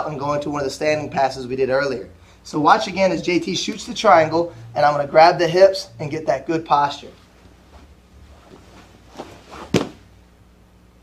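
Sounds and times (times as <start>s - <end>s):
bodies knocking on padded mat: 9.2s - 10.0s
sharp slap on mat: 9.6s - 10.0s.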